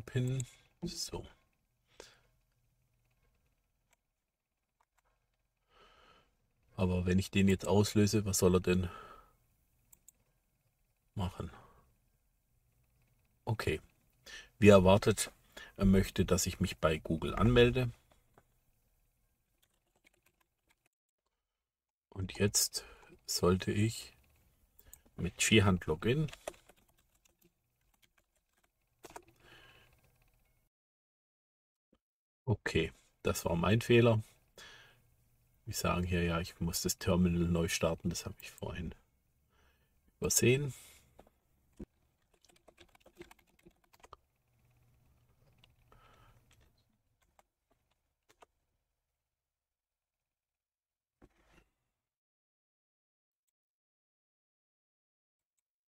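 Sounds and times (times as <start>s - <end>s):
faint mouse and keyboard clicks: 26.0s - 30.6s, 41.2s - 48.6s.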